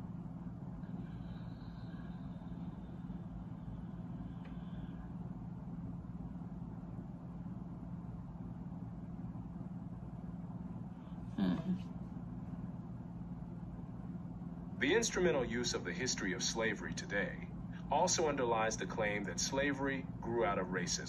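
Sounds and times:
low mechanical hum with rumble: 0.0 - 21.0.

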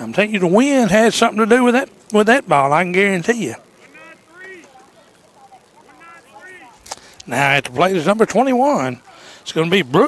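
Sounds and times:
distant voices calling out: 0.0 - 10.0.

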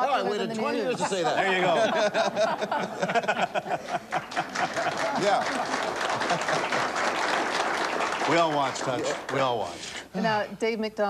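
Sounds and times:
laughter: 0.7 - 7.0
audience applauding: 3.4 - 9.8.

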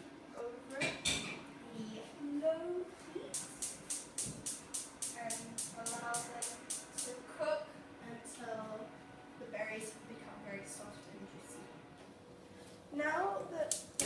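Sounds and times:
gas hob igniter clicking: 3.3 - 7.2, 13.7 - 14.0.

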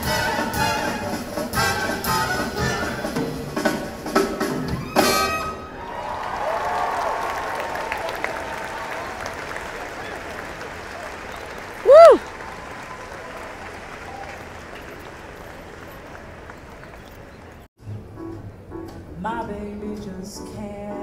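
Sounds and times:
audience applauding: 5.8 - 17.7
listener whooping: 11.7 - 13.4.

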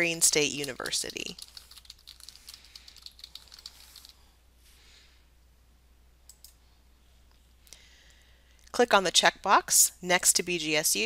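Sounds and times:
computer keyboard typing: 0.3 - 4.2.

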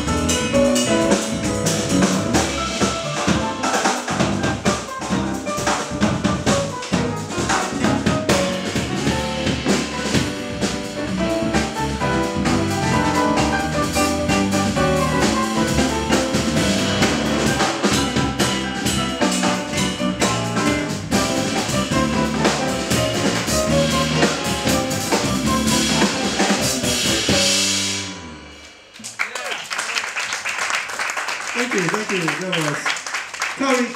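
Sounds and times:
jazz quartet playing: 0.0 - 28.9
audience applause: 29.0 - 33.9.

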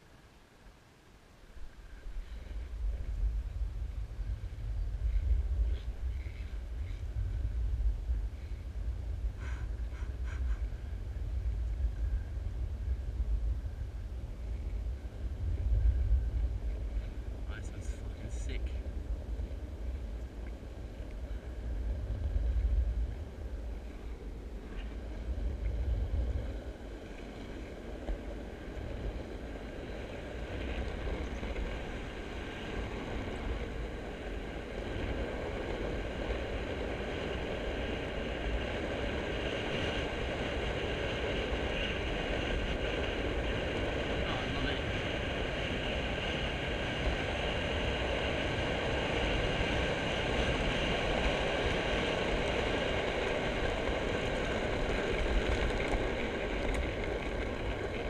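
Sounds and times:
skateboard wheels rolling on asphalt: 0.0 - 58.0
wind rushing over microphone: 1.6 - 58.0.

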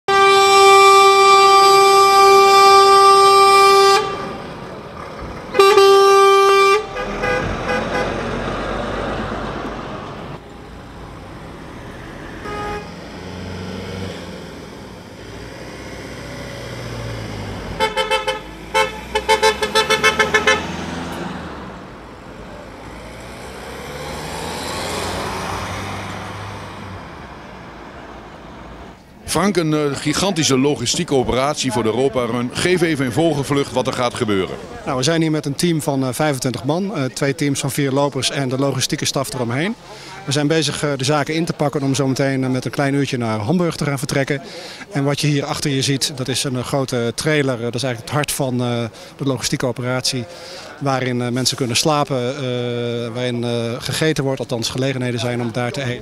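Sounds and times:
short horn honks: 0.1 - 4.5, 5.5 - 8.4, 12.4 - 13.0, 17.8 - 20.8
truck horn blasts: 0.1 - 4.7, 5.5 - 8.8, 12.3 - 21.4
vehicles driving past: 0.1 - 56.0.

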